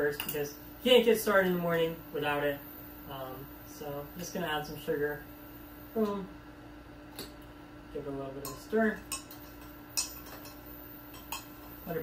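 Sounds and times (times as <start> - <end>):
teaspoon clinking against mug: 8.4 - 11.6.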